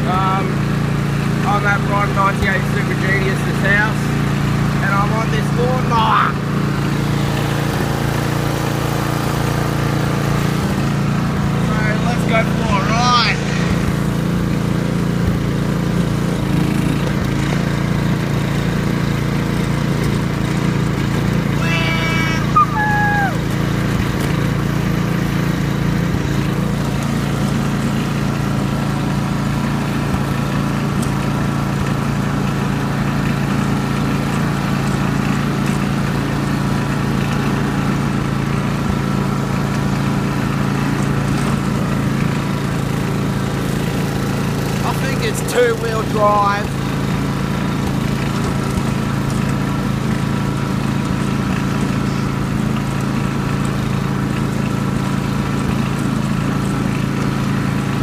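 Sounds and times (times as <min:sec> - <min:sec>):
ride-on lawn mower engine: 0:00.0 - 0:58.0
short voice-like sound: 0:21.5 - 0:23.4.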